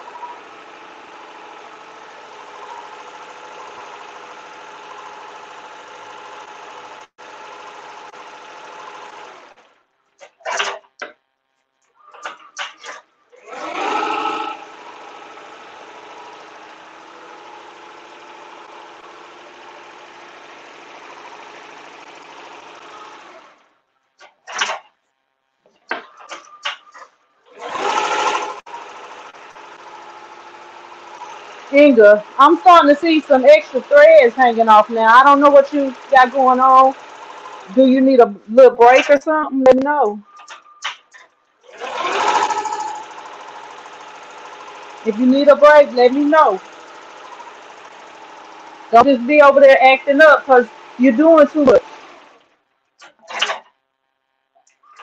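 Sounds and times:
embroidery machine stitching: 0.0s - 11.1s, 12.0s - 24.9s, 26.0s - 53.7s.

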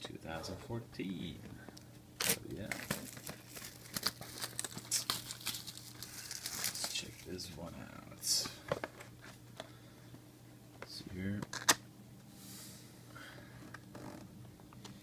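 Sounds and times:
plastic wrap crinkling and tearing: 2.2s - 7.3s.

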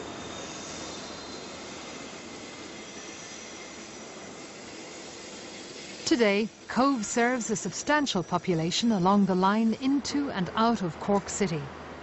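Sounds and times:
faint high squeal: 0.0s - 6.1s.

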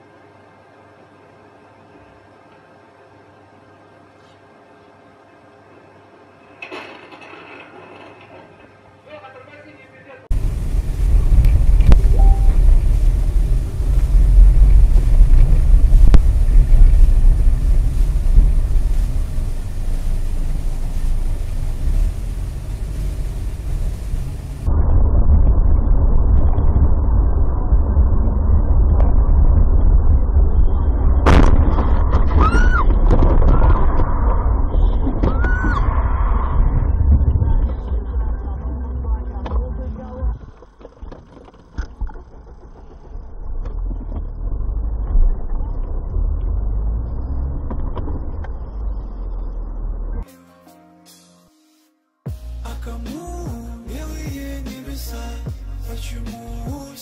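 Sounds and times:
road and wind noise rumble: 10.3s - 50.2s.

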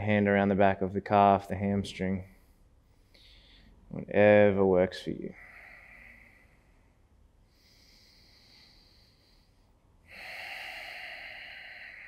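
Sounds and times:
man breathing: 2.2s - 3.9s, 5.3s - 12.0s.

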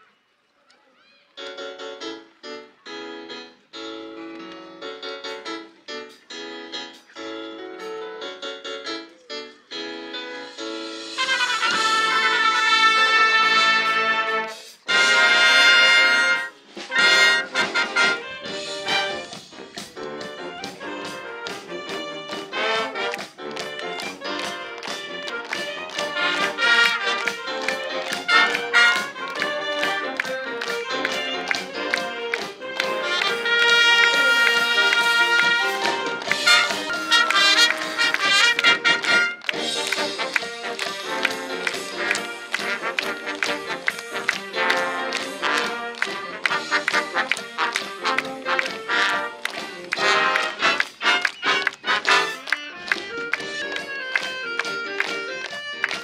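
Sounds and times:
marching band playing: 11.0s - 56.0s.

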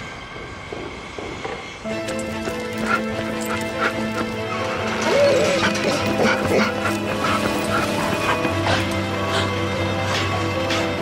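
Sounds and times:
film score music with held chords: 0.0s - 11.0s.

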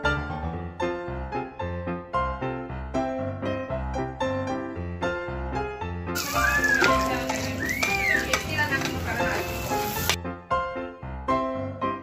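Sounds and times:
garlic sizzling in butter: 6.2s - 10.2s.

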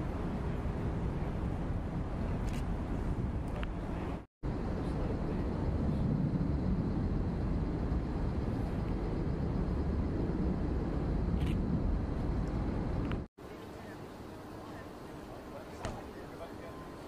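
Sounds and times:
low rumble of vehicles: 0.0s - 17.0s.

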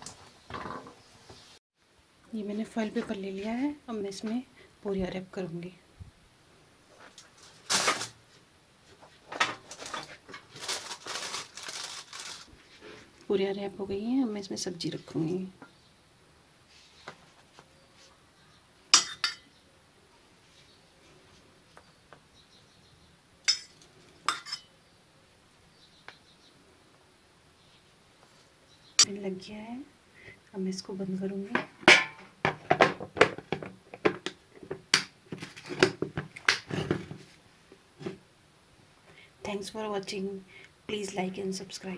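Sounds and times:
metal spoon clinking on dish: 19.0s - 19.4s, 23.5s - 24.7s.

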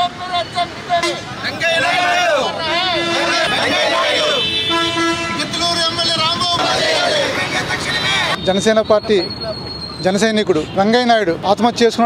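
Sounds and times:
crowd chanting: 0.0s - 4.5s, 6.5s - 8.4s.

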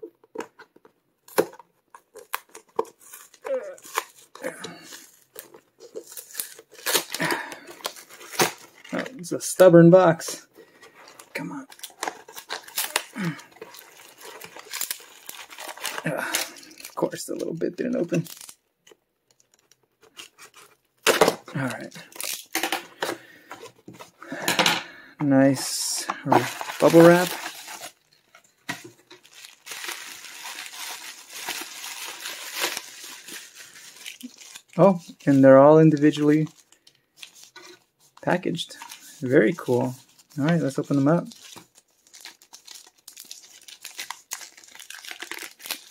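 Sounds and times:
bubble wrap crinkling: 1.9s - 9.2s, 10.1s - 18.6s, 19.5s - 24.4s, 25.4s - 45.9s
cardboard box tearing open: 2.2s - 4.4s, 5.0s - 8.9s, 11.7s - 16.5s, 26.3s - 28.0s, 29.2s - 33.4s.

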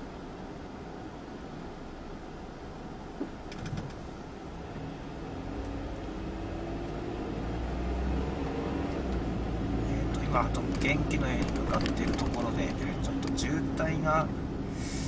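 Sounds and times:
car engine from inside cabin: 0.0s - 15.0s
road noise: 0.0s - 15.0s.

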